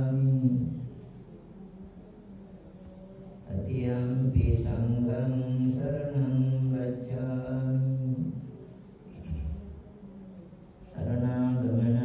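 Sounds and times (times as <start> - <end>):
monks chanting in low voice: 0.0 - 12.0.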